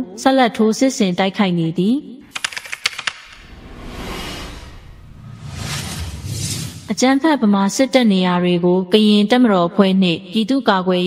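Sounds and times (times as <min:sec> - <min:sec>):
sharp clicks: 0:02.3 - 0:03.4
wash of noise: 0:03.3 - 0:06.9.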